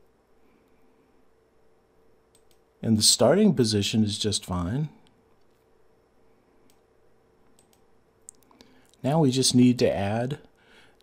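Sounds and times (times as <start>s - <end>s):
computer mouse clicks: 2.3s - 2.7s, 7.5s - 8.6s.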